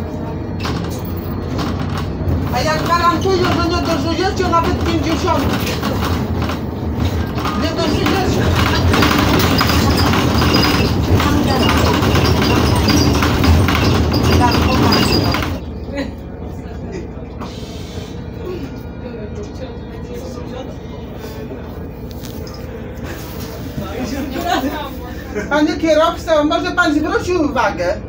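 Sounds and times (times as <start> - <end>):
bus engine and road noise: 0.0 - 28.0
rattling: 0.6 - 15.6.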